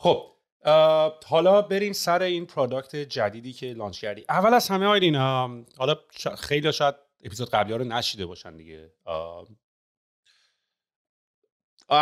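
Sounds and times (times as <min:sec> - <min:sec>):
man speaking: 0:00.0 - 0:09.5
faint short breath: 0:10.3 - 0:10.8.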